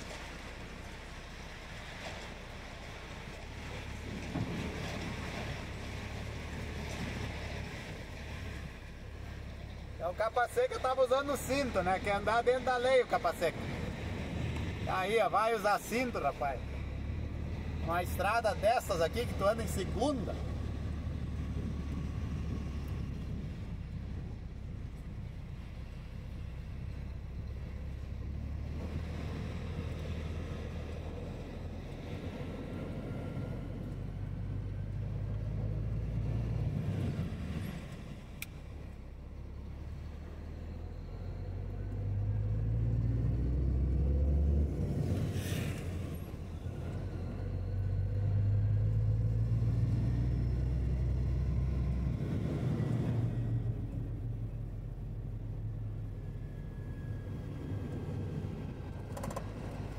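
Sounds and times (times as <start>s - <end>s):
vehicle engine and road noise: 0.0s - 59.9s.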